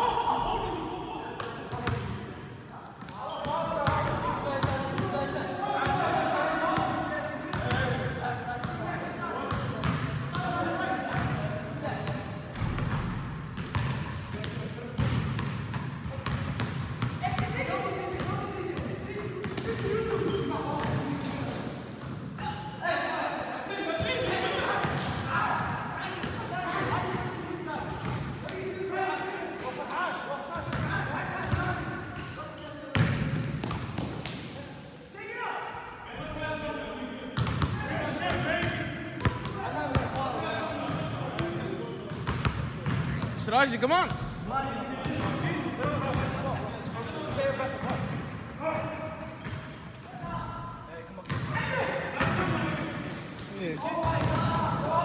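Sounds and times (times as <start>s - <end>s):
players shouting and chatter: 0.0s - 55.0s
basketball bouncing on gym floor: 12.1s - 17.5s, 42.2s - 43.4s.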